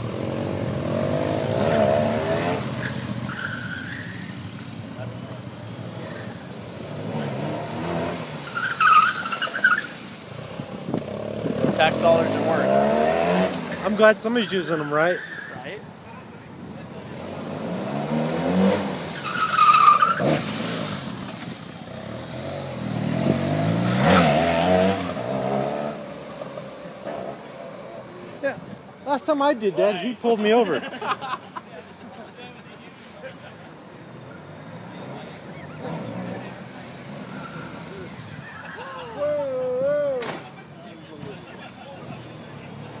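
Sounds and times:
tire squeal: 1.6 - 4.7, 5.9 - 6.6, 8.3 - 10.4, 13.8 - 15.8, 19.0 - 21.4, 34.3 - 40.2
motorcycle engine revving: 10.3 - 13.9, 21.8 - 26.1.

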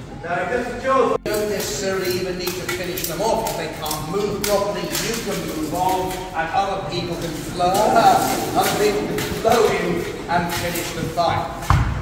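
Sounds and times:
man talking: 0.2 - 11.7.

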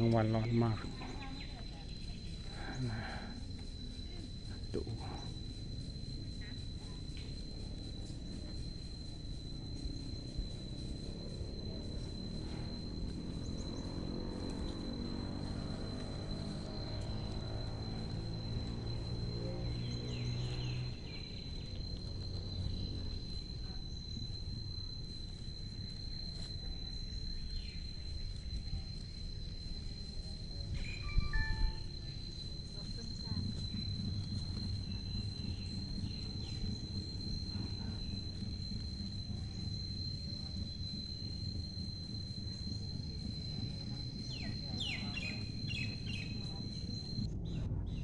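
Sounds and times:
high-pitched insect trill: 0.0 - 48.0.

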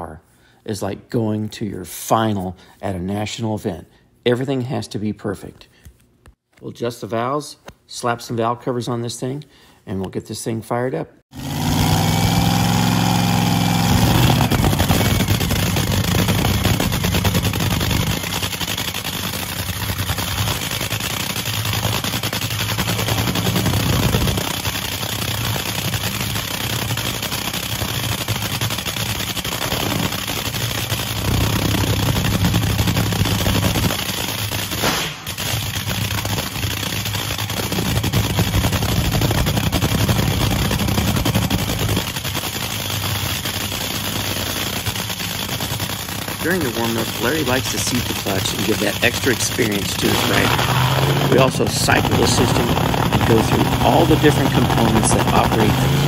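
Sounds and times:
dragster engine idling loudly: 11.4 - 56.0.

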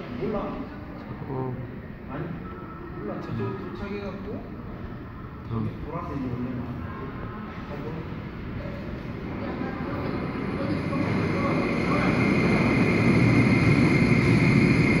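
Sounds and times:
train electric hum and whine: 0.0 - 15.0.

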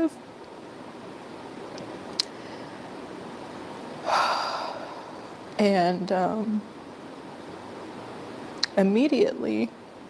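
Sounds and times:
short sharp breath: 4.0 - 5.3.

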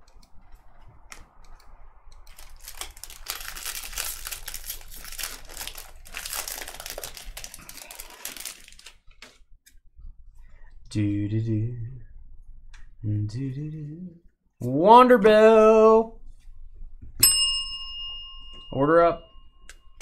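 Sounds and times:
foil wrapper tearing and crinkling: 2.2 - 9.4.

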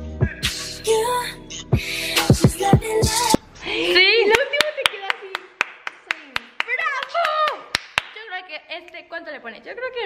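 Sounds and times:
hand clapping: 4.3 - 8.2.

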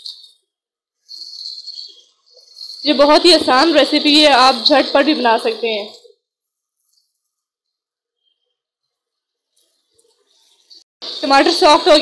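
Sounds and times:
woman speaking: 2.8 - 6.1, 11.2 - 12.0.

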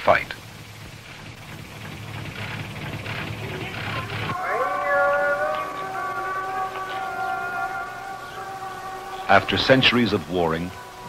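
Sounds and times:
high tones held chord: 4.3 - 11.0.

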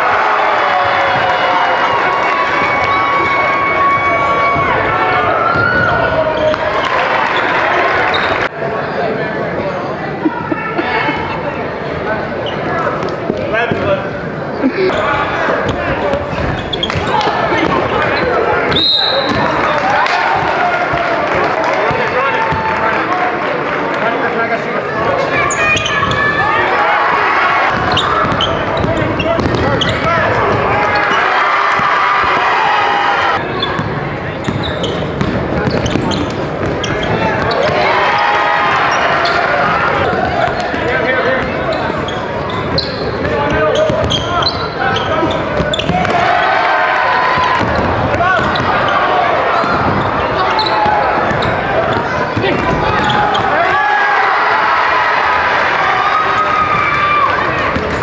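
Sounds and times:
basketball bouncing on court: 15.6 - 19.5, 27.7 - 31.1, 33.6 - 37.8, 42.4 - 46.2, 47.3 - 48.9, 49.6 - 53.5, 57.7 - 58.0.

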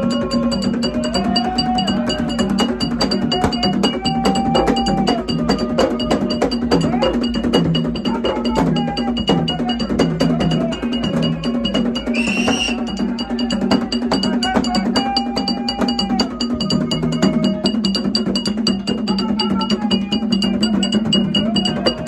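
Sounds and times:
voices chanting: 0.0 - 18.2
hand drums playing: 0.0 - 22.0
metal bell ringing: 0.0 - 22.0.

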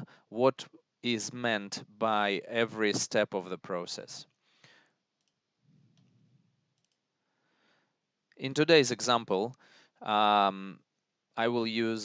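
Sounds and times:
faint computer mouse clicks: 6.8 - 7.0.

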